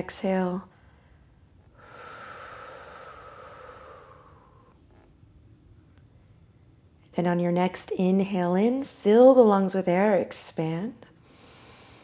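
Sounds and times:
woman breathing out: 0:00.7 - 0:04.8.

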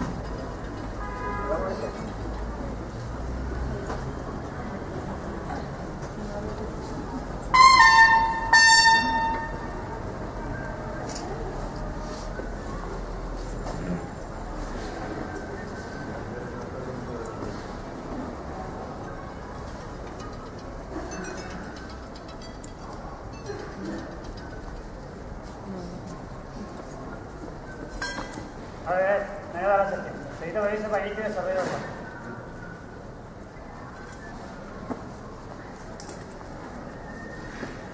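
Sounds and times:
open-air murmur with faint voices: 0:00.0 - 0:37.9
bugle notes: 0:07.5 - 0:09.7.

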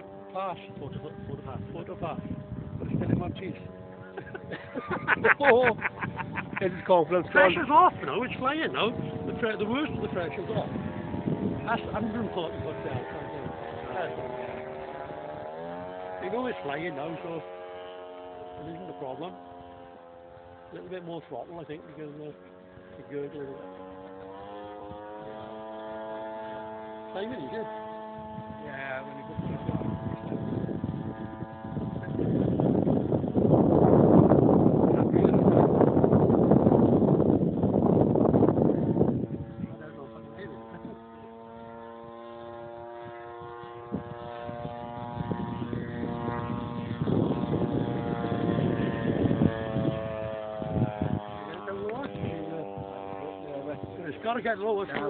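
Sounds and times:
model plane engine in flight: 0:00.0 - 0:55.0.

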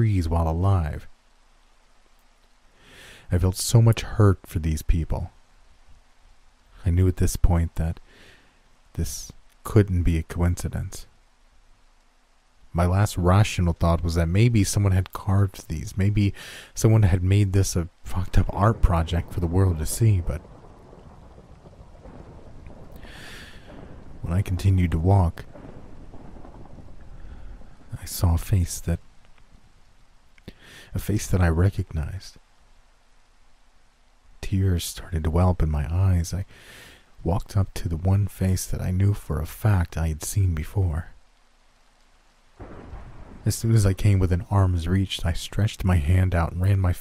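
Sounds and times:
light rain-like hiss: 0:00.0 - 0:47.0
low rumble: 0:17.9 - 0:30.1.

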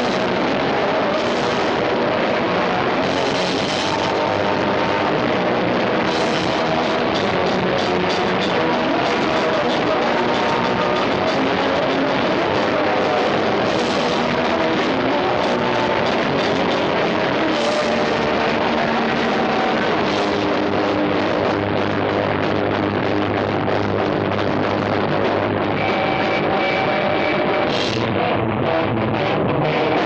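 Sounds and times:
punk rock band playing live: 0:00.0 - 0:30.0.

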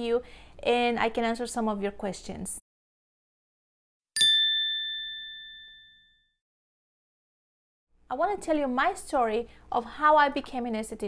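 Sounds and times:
bell-like chime ding: 0:04.2 - 0:06.4.

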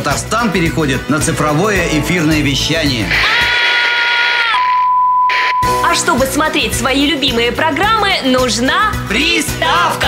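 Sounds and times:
steady high test tone beep: 0:04.6 - 0:06.1.

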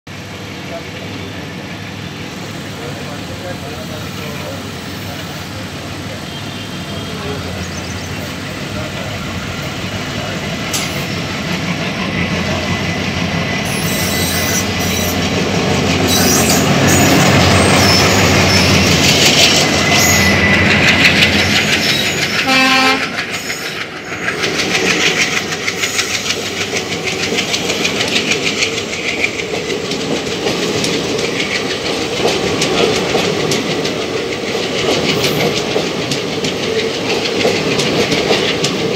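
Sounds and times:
trains passing at speed: 0:00.1 - 0:38.9
train horn: 0:22.4 - 0:23.3.

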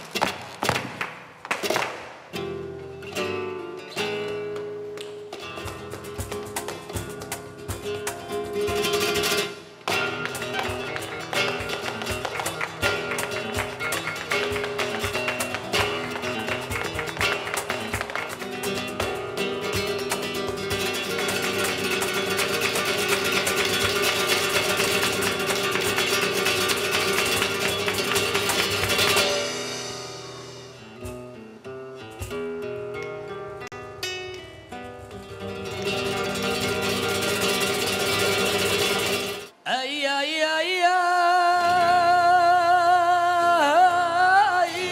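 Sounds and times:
flamenco guitar: 0:00.0 - 0:44.9
sharp percussive strokes: 0:06.2 - 0:32.6.

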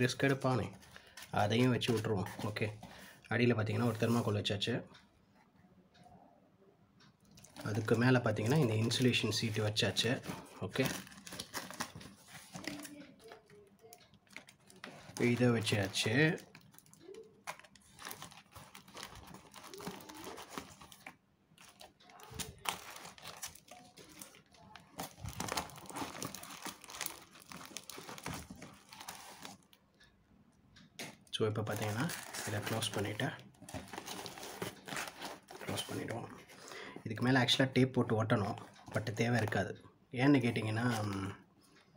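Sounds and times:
plastic bags and foam crinkling: 0:00.0 - 0:04.3, 0:07.4 - 0:29.7, 0:31.6 - 0:36.6.

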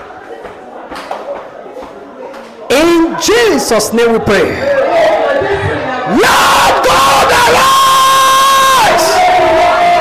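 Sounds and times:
congregation praying and shouting: 0:02.7 - 0:10.0.

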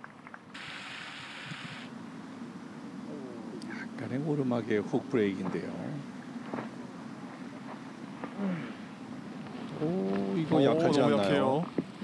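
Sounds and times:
steady hiss: 0:00.2 - 0:12.0.

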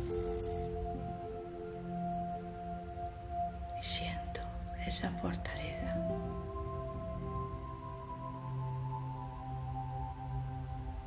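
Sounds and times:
ambient drone music: 0:00.0 - 0:11.0
person speaking: 0:03.8 - 0:06.2.

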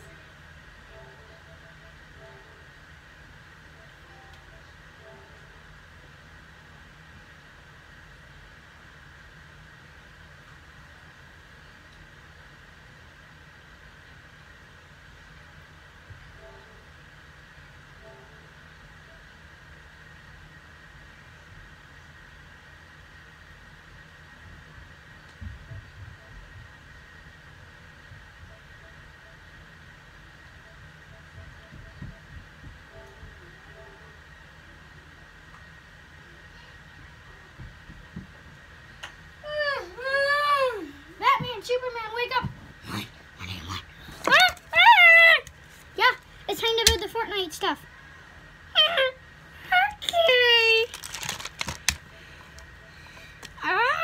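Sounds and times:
electric fan whirring: 0:00.0 - 0:54.0
soft low thumps: 0:25.4 - 0:27.0, 0:31.2 - 0:33.7.

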